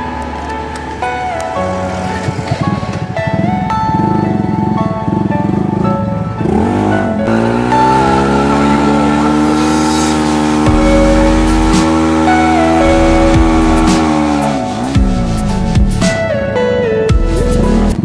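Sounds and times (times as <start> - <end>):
background music: 0.0 - 18.0
motorcycle engine accelerating: 1.7 - 16.3, 17.2 - 18.0.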